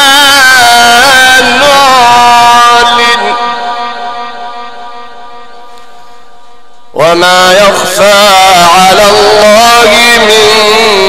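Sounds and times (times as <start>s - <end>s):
man reciting through a microphone: 0.0s - 11.0s.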